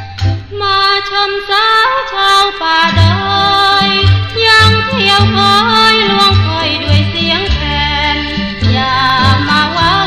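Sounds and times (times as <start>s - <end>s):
woman singing: 0.5s - 10.0s.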